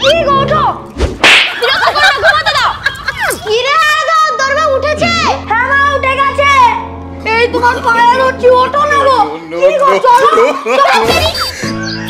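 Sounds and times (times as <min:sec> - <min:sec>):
sharp whip-like swish: 0:01.0 - 0:01.6
child shouting: 0:03.4 - 0:11.4.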